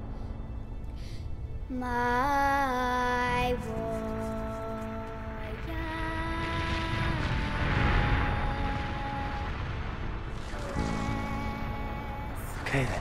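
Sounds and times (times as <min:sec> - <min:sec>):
deep rumble: 0:00.0 - 0:13.0
dramatic orchestral score: 0:00.0 - 0:13.0.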